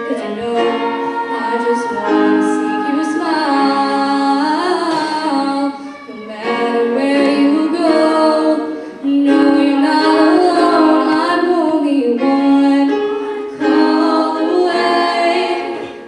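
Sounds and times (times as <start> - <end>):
girls' choir singing: 0.0 - 16.0.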